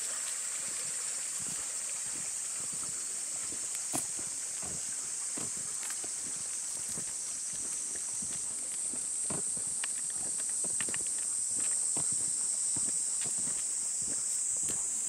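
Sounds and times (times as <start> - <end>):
insects droning: 0.0 - 15.0
footsteps on paved path: 0.2 - 15.0
dogs trotting: 1.4 - 15.0.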